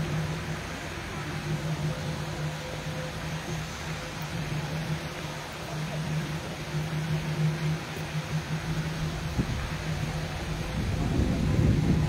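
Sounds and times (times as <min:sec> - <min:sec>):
low mechanical hum: 0:00.0 - 0:12.0
outdoor background noise: 0:00.0 - 0:12.0.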